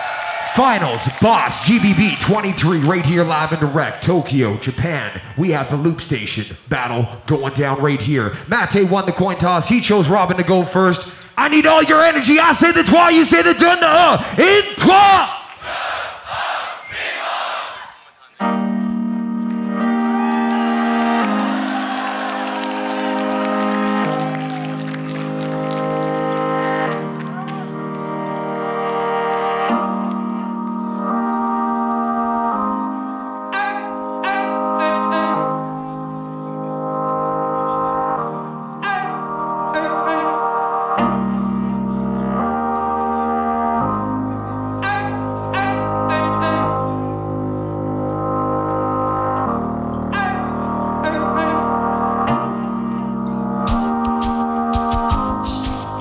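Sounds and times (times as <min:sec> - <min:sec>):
deep bass layer: 0:01.0 - 0:06.1, 0:41.0 - 0:56.0
crowd shout: 0:15.6 - 0:18.1, 0:20.2 - 0:24.8
hissy hi-hat-like bursts: 0:53.7 - 0:56.0.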